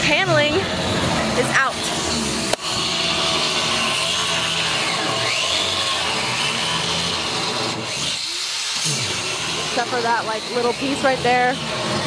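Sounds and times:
power grinder grinding bolts: 0.9s - 12.0s.

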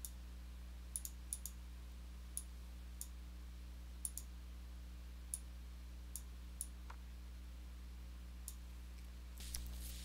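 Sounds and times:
faint low hum: 0.0s - 10.0s
computer mouse clicking: 1.0s - 1.6s, 4.0s - 4.3s.

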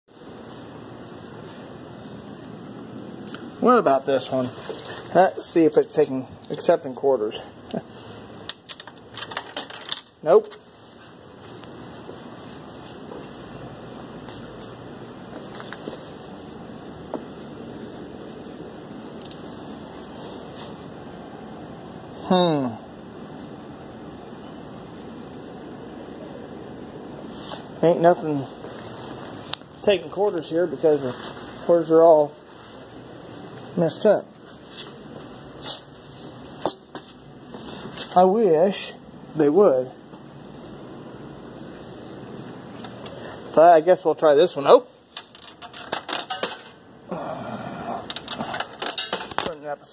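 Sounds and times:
fan hum: 0.1s - 49.9s
low background noise: 0.1s - 49.9s.

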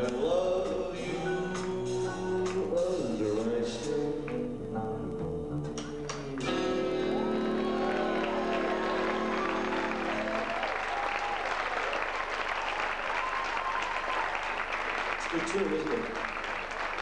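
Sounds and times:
big band held chord: 6.0s - 11.0s
audience applauding: 6.1s - 17.0s.

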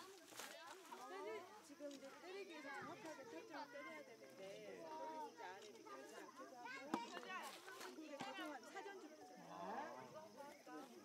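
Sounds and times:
onlookers chattering: 0.0s - 11.0s.

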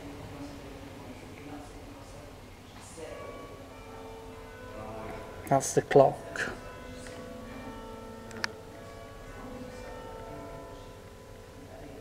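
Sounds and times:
church bells chiming: 3.0s - 12.0s.

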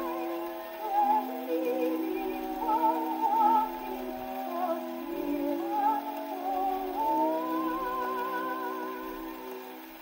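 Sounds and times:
soprano singing with vibrato: 0.0s - 10.0s.

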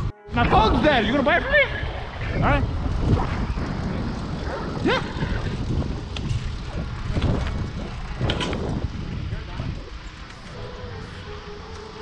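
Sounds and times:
bicycle tyres rolling on asphalt: 0.0s - 12.0s
wind buffeting microphone: 0.0s - 12.0s.

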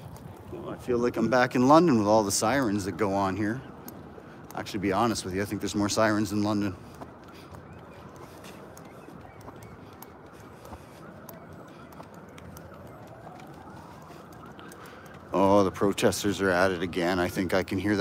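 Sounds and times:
distant siren wailing: 0.0s - 18.0s
urban background hum: 0.0s - 18.0s.

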